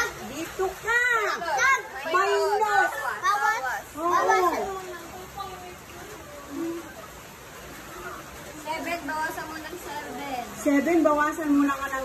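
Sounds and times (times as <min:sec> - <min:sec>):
girls talking and calling out: 0:00.0 - 0:12.0.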